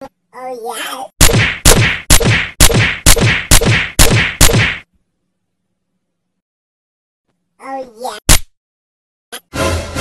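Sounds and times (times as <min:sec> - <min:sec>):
cartoon whack sound effect: 0:01.2 - 0:04.8, 0:08.3 - 0:08.5.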